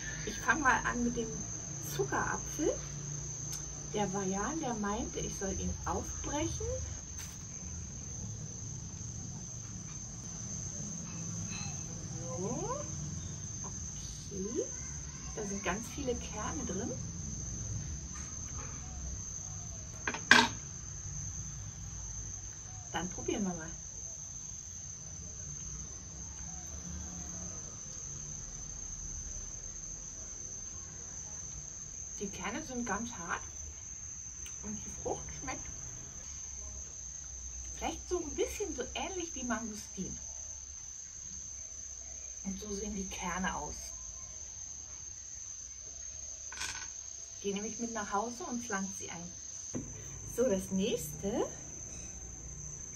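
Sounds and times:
insects chirring: 0.0s - 52.9s.

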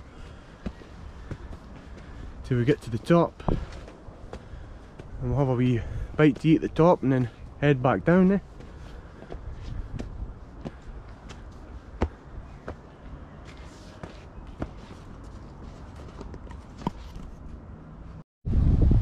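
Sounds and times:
footsteps on dirt and leaves: 8.3s - 17.5s.

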